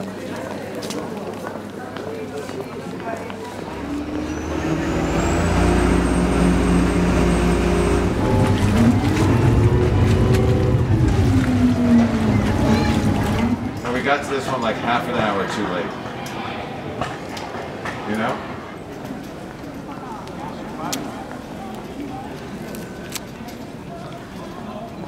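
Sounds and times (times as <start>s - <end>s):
boat engine rumble: 3.5s - 14.2s.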